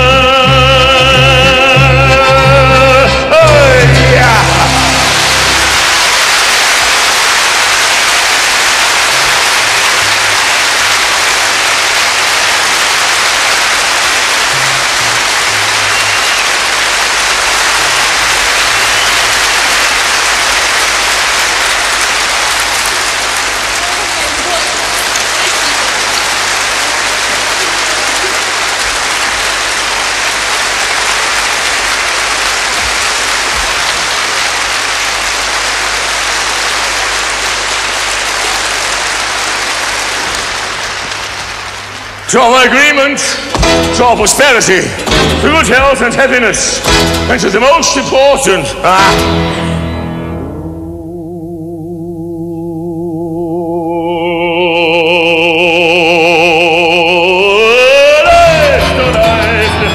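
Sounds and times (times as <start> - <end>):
large audience applauding: 2.3 - 50.4, 54.2 - 59.9.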